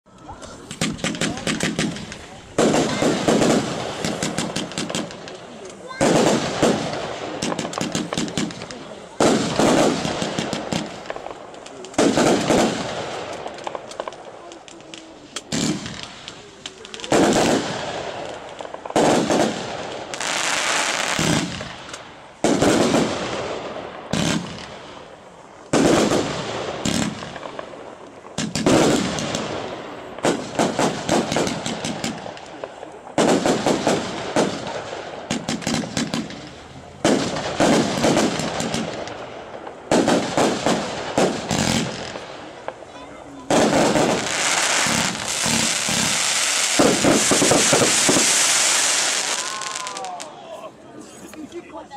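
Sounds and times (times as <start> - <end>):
fireworks shots and bursts: 0.1 - 50.4
fireworks crackle: 0.1 - 51.9.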